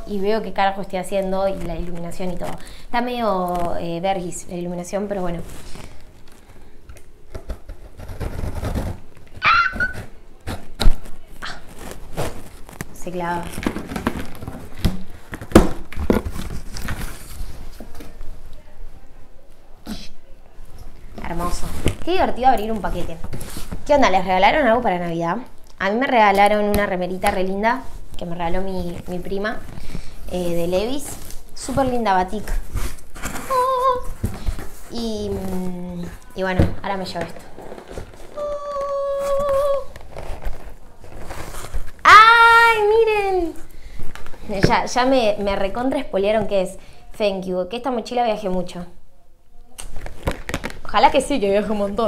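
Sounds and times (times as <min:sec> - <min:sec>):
scraping and crinkling: 0:00.0 - 0:18.8, 0:20.7 - 0:46.6, 0:49.8 - 0:52.0
box rustling: 0:07.3 - 0:18.2, 0:28.7 - 0:42.0, 0:49.9 - 0:51.7.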